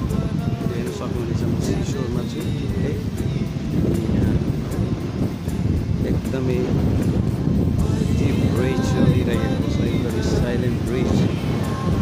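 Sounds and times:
faint voices or music: 0:00.0 - 0:12.0
wind buffeting microphone: 0:00.0 - 0:12.0.

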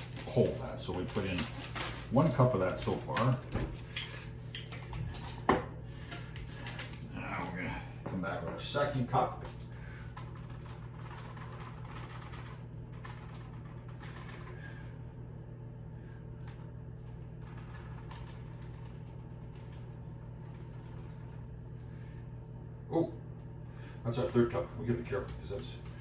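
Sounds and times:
steady low hum: 0:00.0 - 0:26.0.

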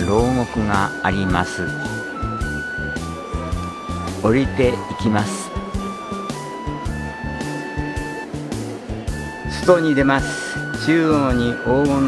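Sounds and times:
steady low beat: 0:00.0 - 0:11.5
held melody notes: 0:00.0 - 0:12.0.

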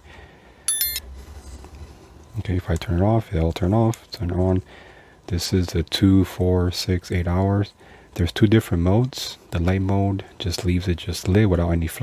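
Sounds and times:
high-pitched electronic beep: 0:00.7 - 0:01.0.

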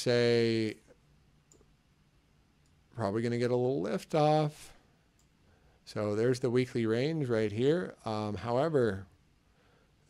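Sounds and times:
computer mouse clicks: 0:01.5 - 0:01.8.

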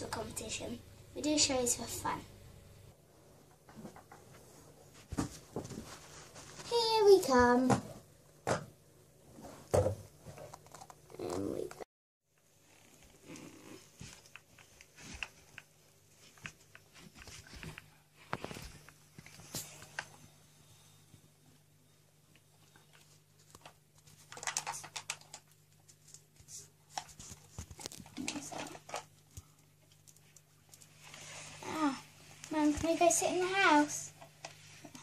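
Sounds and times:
plastic toys clicking and rustling: 0:22.9 - 0:26.2, 0:26.9 - 0:30.9.

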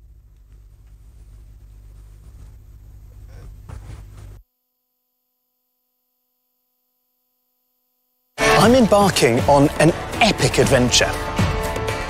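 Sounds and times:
faint steady hum: 0:00.0 - 0:08.4.

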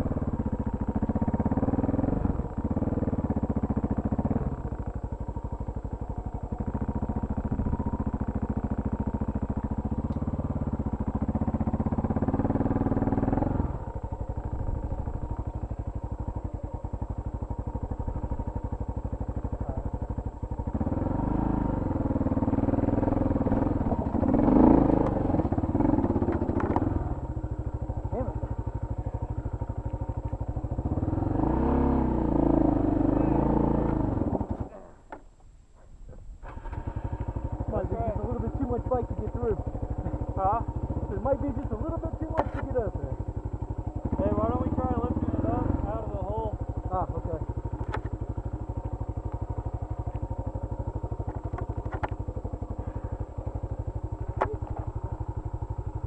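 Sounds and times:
motorcycle engine revving: 0:00.0 - 0:35.2, 0:36.2 - 0:56.0.

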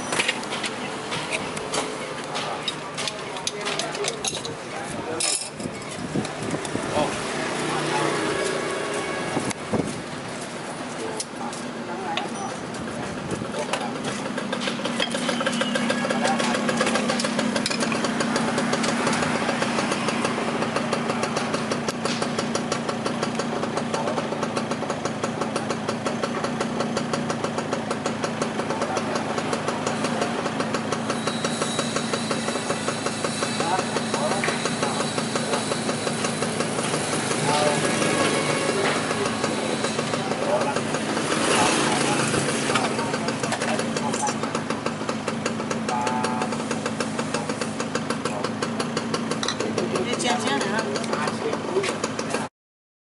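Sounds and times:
engine idling with ticking: 0:09.5 - 0:52.5.

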